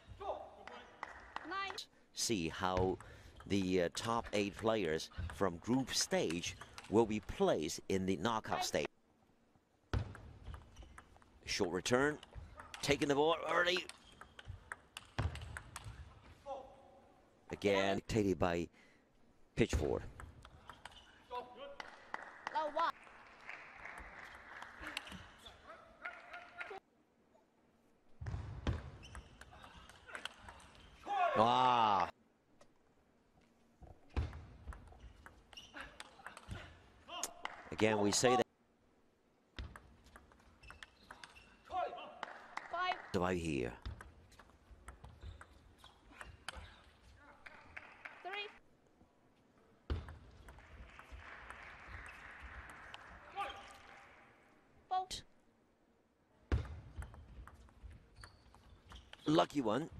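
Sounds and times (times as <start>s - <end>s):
ping pong ball clicking off bats: 6.2s - 6.9s, 9.9s - 11.3s, 12.2s - 16.0s, 20.0s - 21.0s, 34.2s - 36.6s, 39.6s - 41.5s, 43.8s - 46.7s, 56.5s - 59.4s
table tennis ball clicking: 13.7s - 16.0s, 56.6s - 59.3s.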